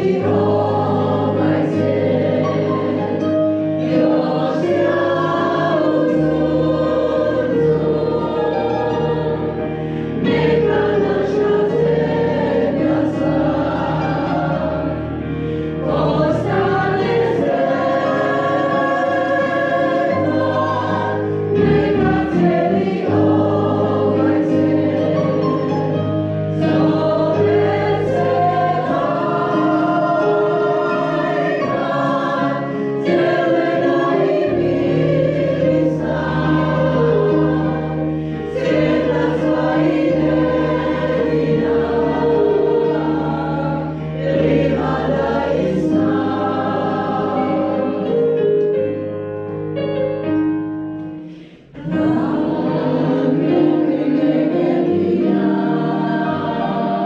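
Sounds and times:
choir singing: 0.0s - 48.6s, 51.2s - 57.0s.

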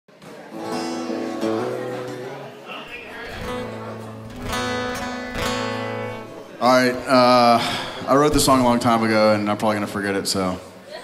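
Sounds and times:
acoustic guitar strumming chords: 0.5s - 9.0s.

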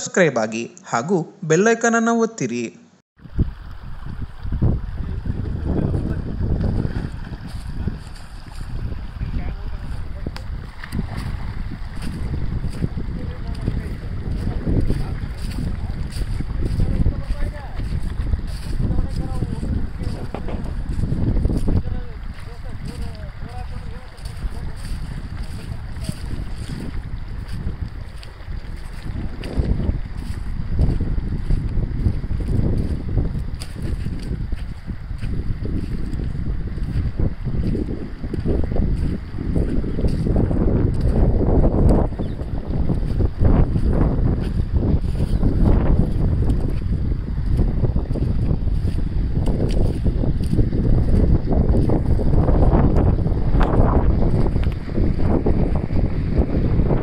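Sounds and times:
rushing water: 3.2s - 57.0s
wind buffeting microphone: 3.2s - 57.0s.

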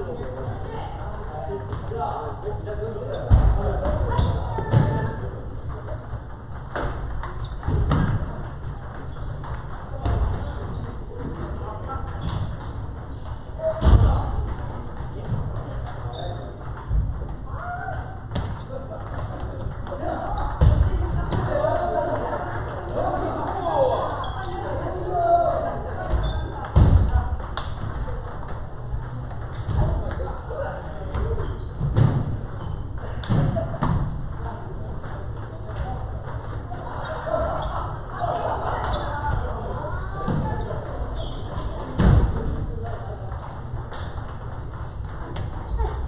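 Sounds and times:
table tennis balls knocking: 0.0s - 24.4s, 25.8s - 46.0s
voices talking: 0.0s - 46.0s.

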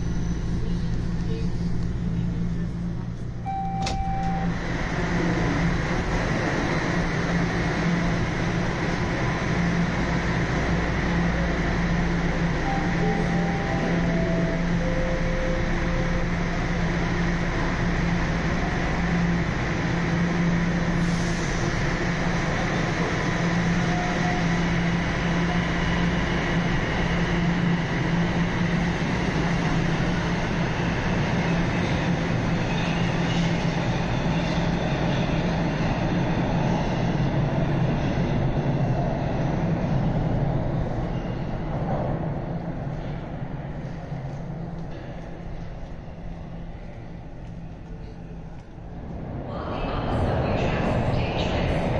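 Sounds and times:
train motor hum and rolling: 0.0s - 51.9s
three-note door chime: 3.5s - 4.6s.

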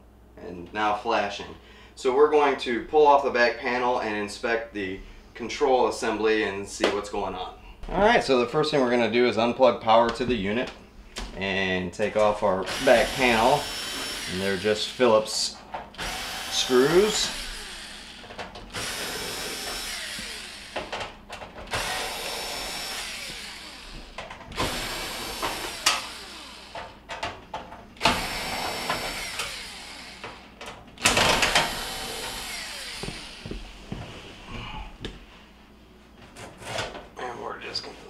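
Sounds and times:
cordless drill backing out screws: 15.9s - 27.0s, 31.0s - 33.6s.

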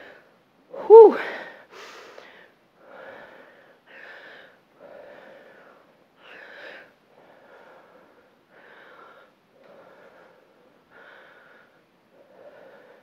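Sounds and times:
woman breathing hard: 0.0s - 13.0s.

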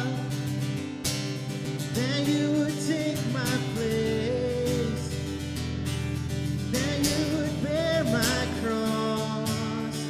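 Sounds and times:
man singing: 0.0s - 0.8s, 1.7s - 5.5s, 6.6s - 10.0s
guitar playing: 0.0s - 10.0s.

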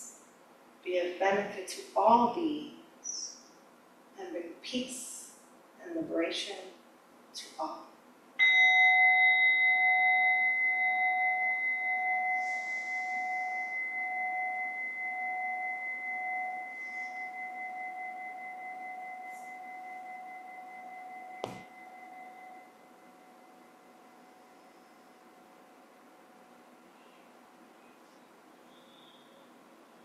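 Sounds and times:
meditation bell ringing: 8.4s - 26.8s
short knock: 21.4s - 21.7s.

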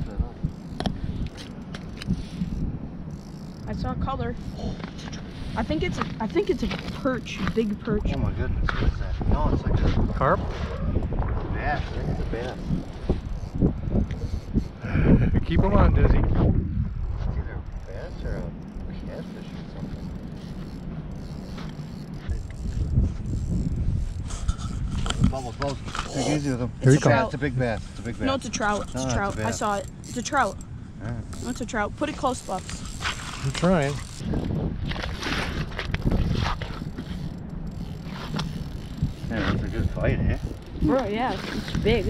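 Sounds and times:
wind on microphone: 0.0s - 42.0s
fishing reel ratcheting: 0.4s - 8.3s, 12.1s - 14.8s, 17.0s - 26.6s, 28.0s - 42.0s.

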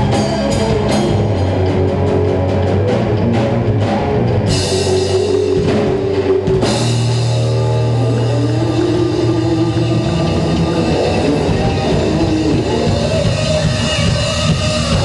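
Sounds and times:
live rock band playing: 0.0s - 15.0s
drum hits: 2.9s - 7.9s.

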